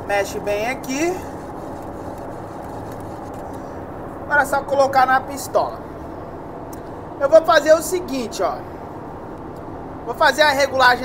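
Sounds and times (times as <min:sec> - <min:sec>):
person speaking: 0:00.0 - 0:01.6, 0:04.3 - 0:05.9
ventilation air rushing: 0:00.0 - 0:11.0.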